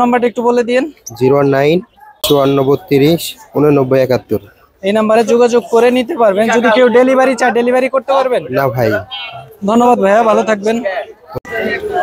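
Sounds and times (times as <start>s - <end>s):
man speaking: 0.0s - 11.4s.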